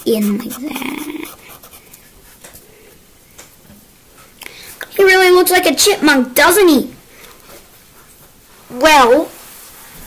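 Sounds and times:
marker drawing on paper: 0.0 - 2.5.

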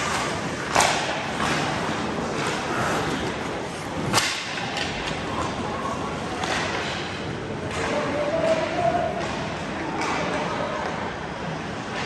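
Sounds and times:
indoor arena background noise: 0.0 - 12.0.

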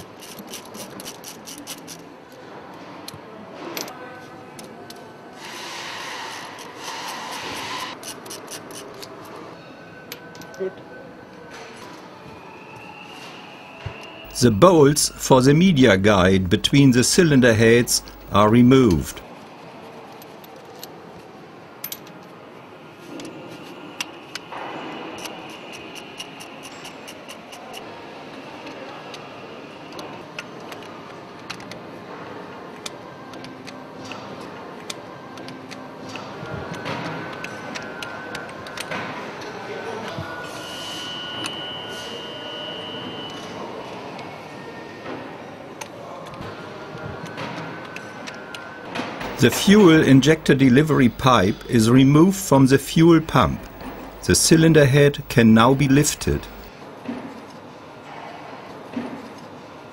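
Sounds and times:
steady workshop hiss: 14.2 - 19.2, 49.2 - 56.7.

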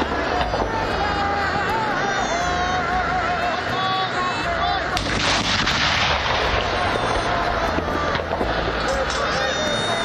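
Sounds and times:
artillery gun firing: 5.0 - 7.4.

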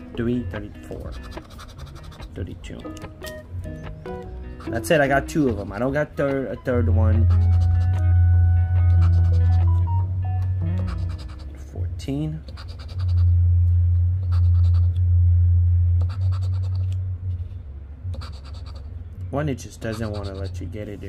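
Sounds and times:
scratching lottery ticket coating: 1.0 - 2.4, 7.2 - 8.0, 8.9 - 9.8, 10.8 - 11.6, 12.5 - 13.3, 16.0 - 16.9, 19.8 - 21.0
music with deep bass: 2.9 - 11.7, 13.1 - 17.2.

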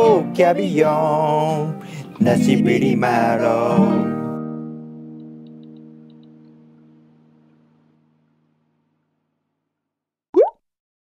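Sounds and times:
cartoon plop rising in pitch: 10.4 - 10.6.

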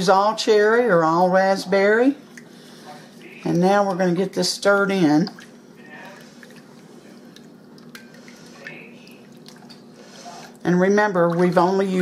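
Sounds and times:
liquid swishing: 4.7 - 12.0.

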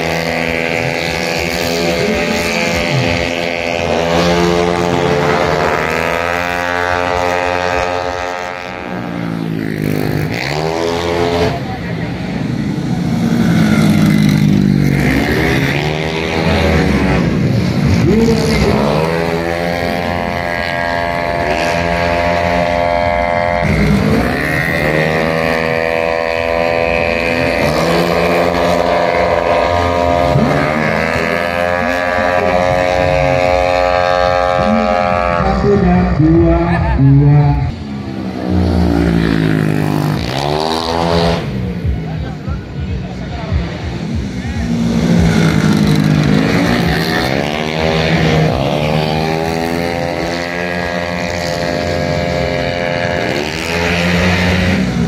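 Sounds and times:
scooter engines revving past: 0.0 - 55.0.

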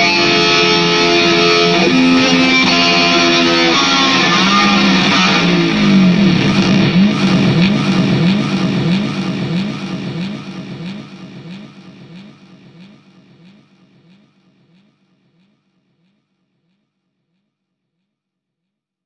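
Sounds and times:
electric guitar pitch slide: 0.0 - 13.5.

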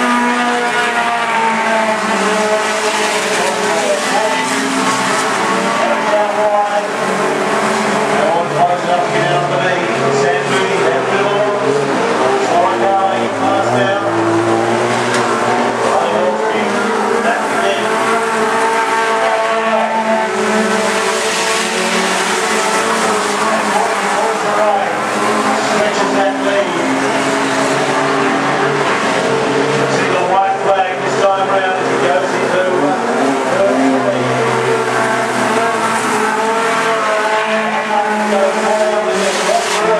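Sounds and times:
race car engines running flat out: 0.0 - 39.9.

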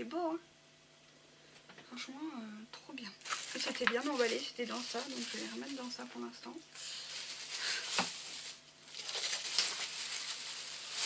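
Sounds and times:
plastic bag crinkling: 3.2 - 11.0.

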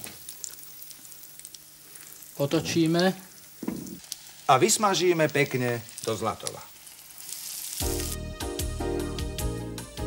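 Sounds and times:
food sizzling in hot oil: 0.0 - 9.5.

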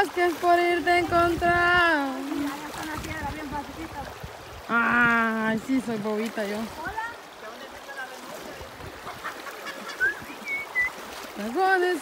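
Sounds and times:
river running over stones: 0.0 - 12.0.

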